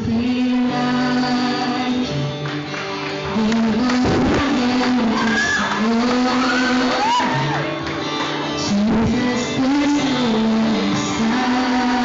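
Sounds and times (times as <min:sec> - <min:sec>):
man singing into a microphone: 0:00.0 - 0:02.5, 0:03.2 - 0:07.8, 0:08.4 - 0:12.0
acoustic guitar: 0:00.0 - 0:12.0.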